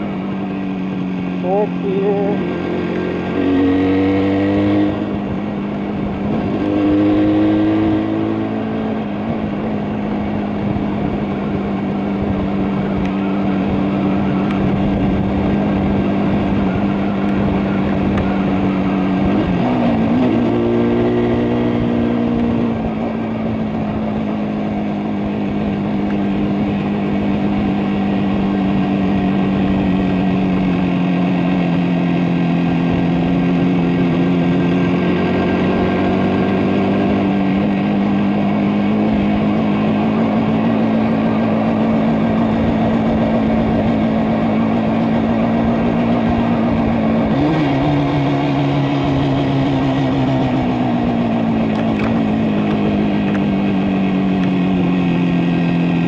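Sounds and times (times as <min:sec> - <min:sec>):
motorcycle engine running: 0:00.0 - 0:56.0.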